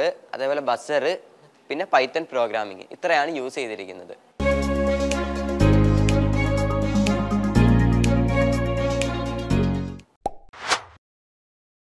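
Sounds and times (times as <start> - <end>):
short whoosh: 10.6 - 11.0.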